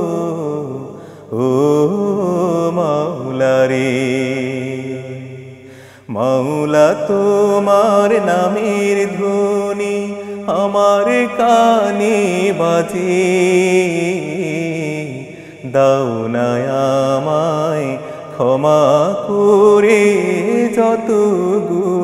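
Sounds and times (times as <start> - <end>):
man singing slowly: 0.0 - 22.0.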